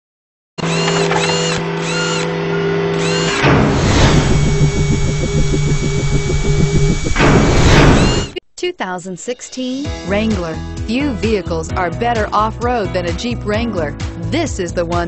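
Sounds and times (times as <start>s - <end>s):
mechanical whir: 0.6s - 8.4s
fast rhythmic mechanical pulse: 3.0s - 8.4s
whoosh: 3.4s - 8.4s.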